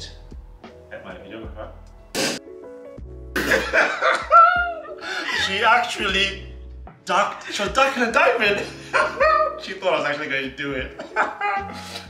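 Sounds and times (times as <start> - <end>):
background music: 0.0 - 12.0
laughter: 3.4 - 5.5, 8.6 - 9.6, 11.0 - 12.0.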